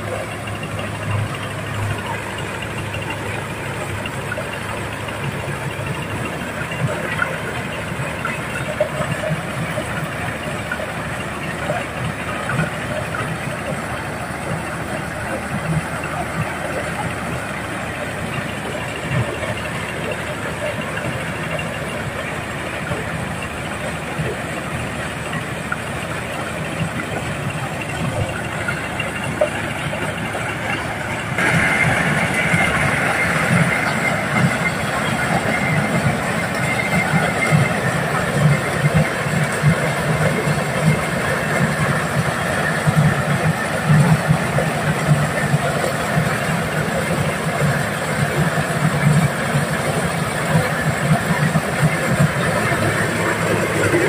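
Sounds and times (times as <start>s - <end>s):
diesel corn sheller running: 0.0s - 54.0s.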